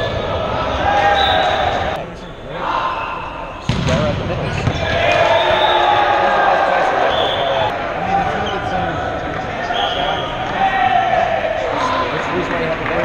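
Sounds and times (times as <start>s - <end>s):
sneakers squeaking: 0.0s - 6.0s
players shouting: 0.0s - 13.0s.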